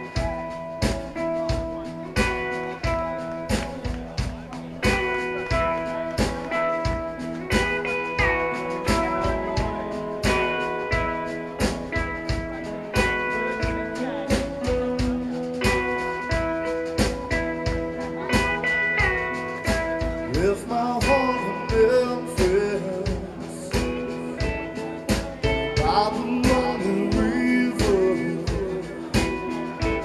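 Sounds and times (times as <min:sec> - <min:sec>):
electric guitar lead: 0:00.0 - 0:30.0
steady drum beat: 0:00.0 - 0:30.0.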